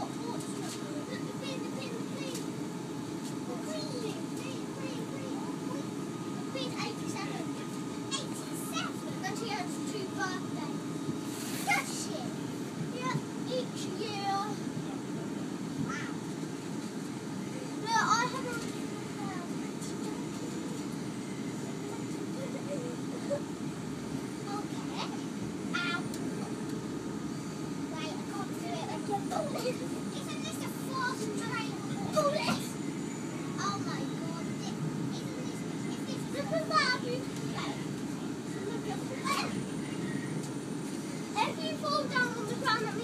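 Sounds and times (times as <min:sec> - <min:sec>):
children chattering: 0:00.0 - 0:02.8, 0:03.4 - 0:11.0, 0:13.0 - 0:16.2, 0:17.2 - 0:43.0
train running rumble: 0:00.0 - 0:43.0.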